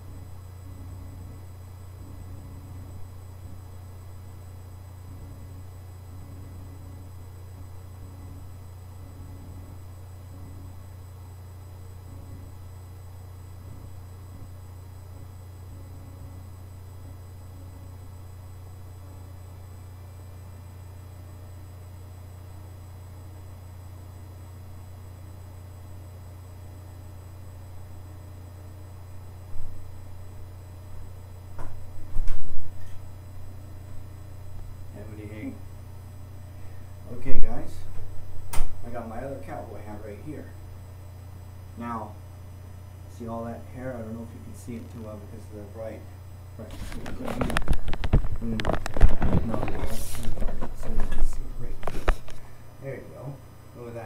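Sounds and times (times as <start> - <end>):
low hum with faint hiss: 0.0 - 54.0.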